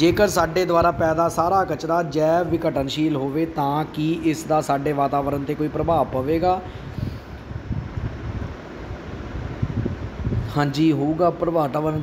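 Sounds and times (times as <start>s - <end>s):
wind buffeting microphone: 0.0s - 11.6s.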